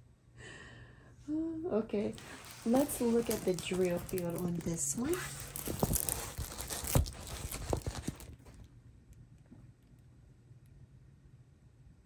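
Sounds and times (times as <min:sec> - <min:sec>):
plastic film crinkling: 0:02.1 - 0:08.7.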